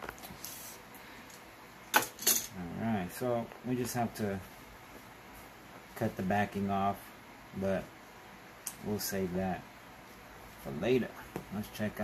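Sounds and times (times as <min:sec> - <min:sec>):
man speaking: 0:02.5 - 0:04.5, 0:06.0 - 0:07.9, 0:08.8 - 0:09.7, 0:10.6 - 0:12.0.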